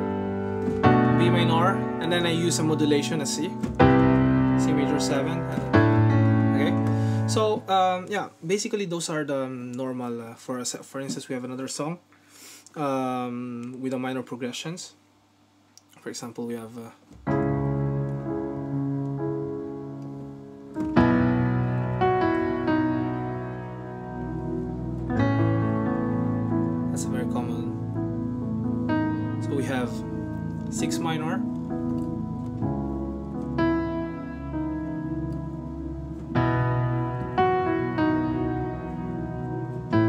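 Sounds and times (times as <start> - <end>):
piano chords: 0.0 - 8.3, 17.2 - 40.0.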